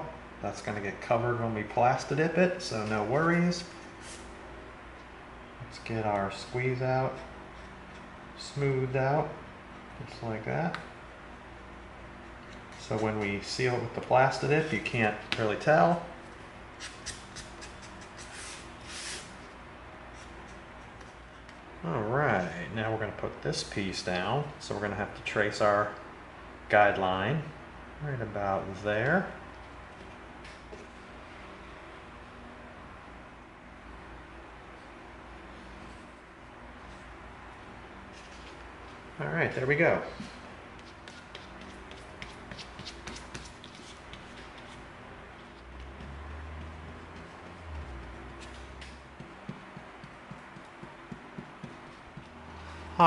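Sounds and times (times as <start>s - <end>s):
glue brush scratchy taps: 40.8s - 44.8s, 45.4s - 52.4s.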